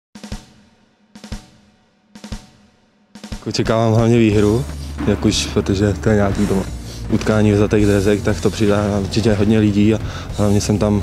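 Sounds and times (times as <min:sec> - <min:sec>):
drum hits: 0:00.2 - 0:10.5.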